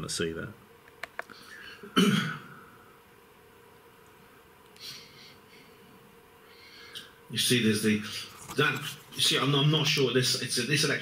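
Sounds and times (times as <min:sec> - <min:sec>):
man clearing his throat: 0:01.8 - 0:02.6.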